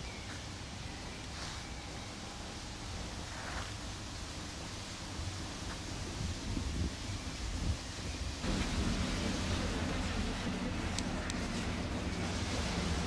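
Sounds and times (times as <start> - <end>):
wind rumbling on microphone: 2.8 - 13.0.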